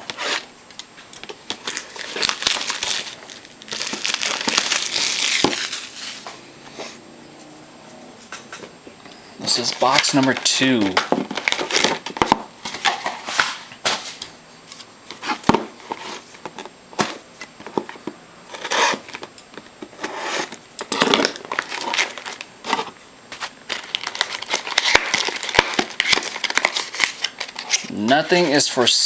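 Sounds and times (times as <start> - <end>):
cardboard crinkling and tearing: 1.2 - 6.3, 9.4 - 13.6, 15.1 - 19.2, 20.0 - 29.0.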